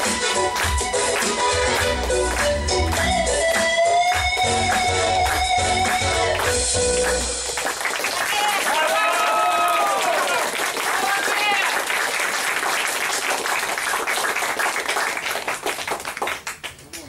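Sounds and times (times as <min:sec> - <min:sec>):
audience applauding: 0:00.0 - 0:17.0.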